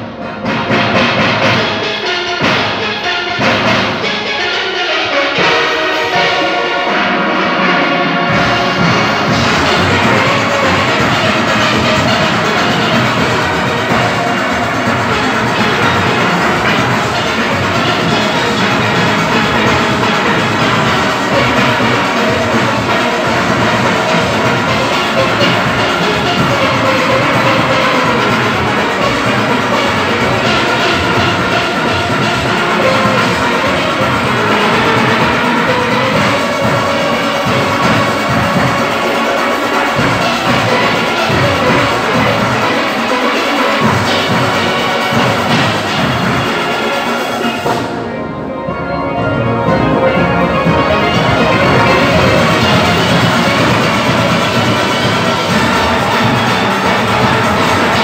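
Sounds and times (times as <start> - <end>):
steelpans playing melody: 0.0 - 58.0
bass pans and percussion beat: 8.2 - 48.0, 49.6 - 58.0.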